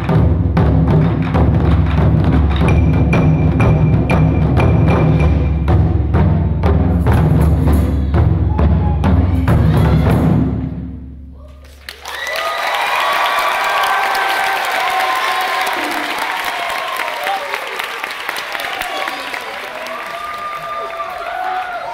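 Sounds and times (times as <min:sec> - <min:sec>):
taiko drums ringing: 0:00.0 - 0:11.0
cheers and whoops: 0:11.4 - 0:21.9
audience applause: 0:11.6 - 0:21.9.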